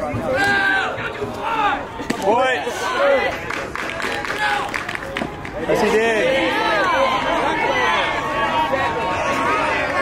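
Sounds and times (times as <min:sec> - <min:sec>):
players yelling and calling out: 0:00.0 - 0:10.0.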